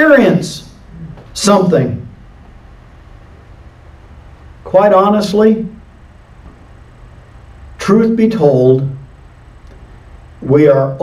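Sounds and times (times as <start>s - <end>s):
faint hiss: 0.0s - 11.0s
steady low hum: 0.0s - 11.0s.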